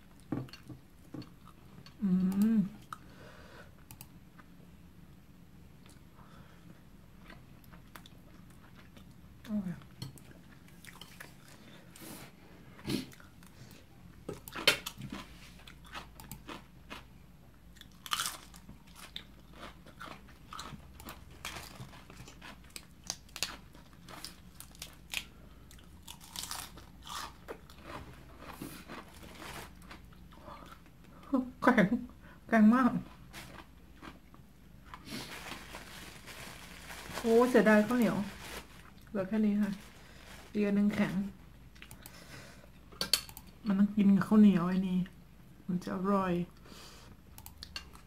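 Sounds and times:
person chewing crisp vegetables: 0:06.7 - 0:11.8, 0:12.8 - 0:31.2, 0:33.0 - 0:36.9.

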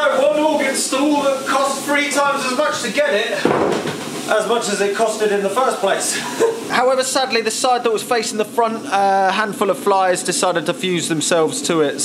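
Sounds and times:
man talking: 0:00.0 - 0:03.5, 0:04.2 - 0:12.0
wooden bench knock and scrape: 0:03.4 - 0:04.2.

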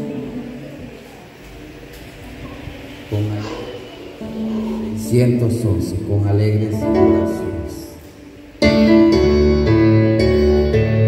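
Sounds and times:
amplified man's voice: 0:04.8 - 0:08.0.

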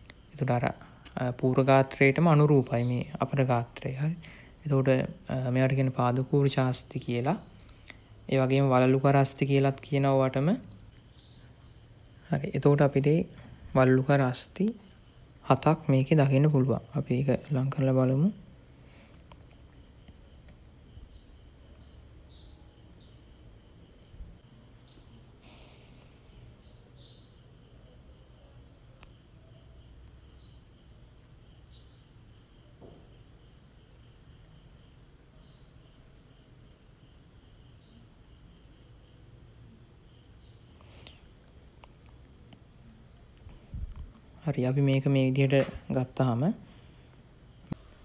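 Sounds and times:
insects trilling: 0:00.0 - 0:48.0.

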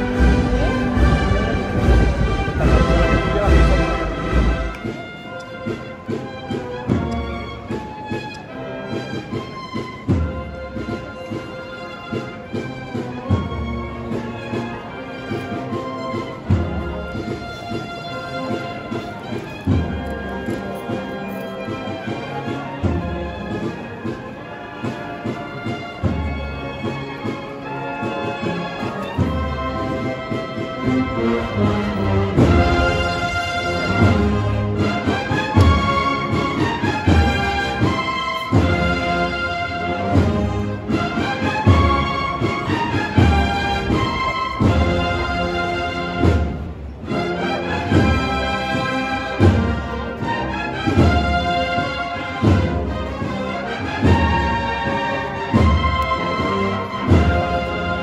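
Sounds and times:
brass band processional march: 0:00.0 - 0:58.0.

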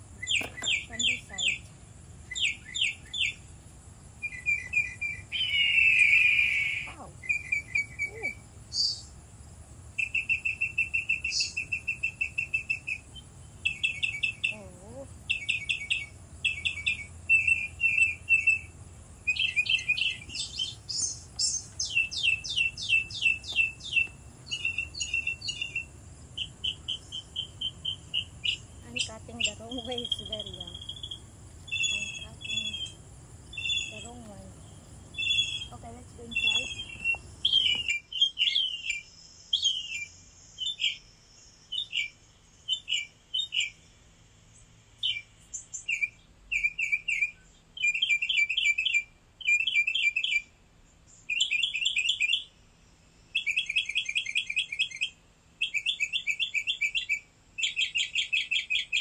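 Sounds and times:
songbirds chirping and singing: 0:00.0 - 0:59.0.

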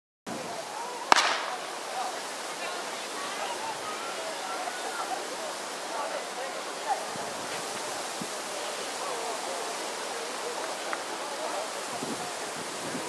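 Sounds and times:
outdoor noise: 0:00.2 - 0:13.0
faint distant voices calling: 0:00.3 - 0:13.0
starter's pistol firing: 0:01.1 - 0:01.7.

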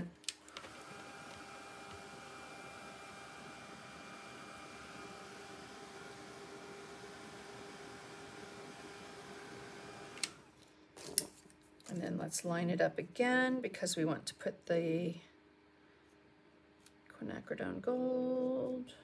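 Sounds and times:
blow dryer running: 0:00.0 - 0:10.5.

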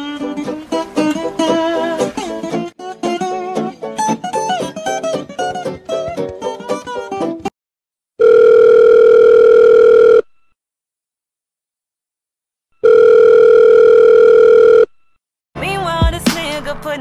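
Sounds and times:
telephone ringback tone: 0:08.2 - 0:10.4, 0:12.8 - 0:14.9.

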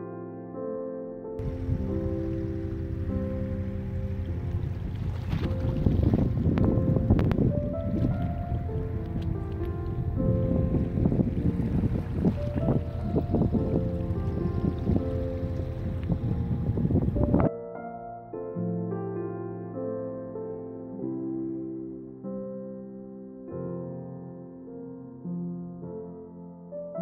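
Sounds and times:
soft instrumental music: 0:00.0 - 0:27.0
wind buffeting microphone: 0:01.4 - 0:17.5.

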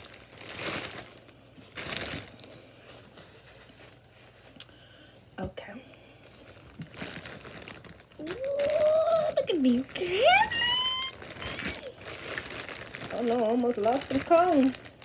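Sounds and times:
paper napkin crumpling: 0:00.0 - 0:04.6, 0:06.4 - 0:15.0
person exclaiming: 0:08.2 - 0:12.0.

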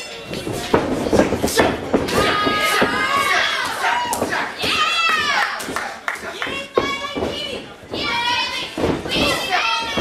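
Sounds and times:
children shouting: 0:02.1 - 0:10.0.

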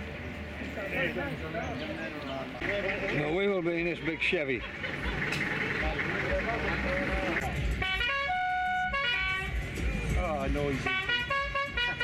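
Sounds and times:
car horn tones: 0:07.8 - 0:09.6, 0:10.8 - 0:12.0.

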